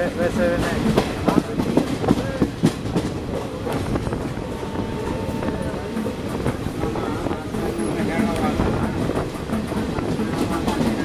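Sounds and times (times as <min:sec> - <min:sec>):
train wheels clattering over rails: 0:00.0 - 0:11.0.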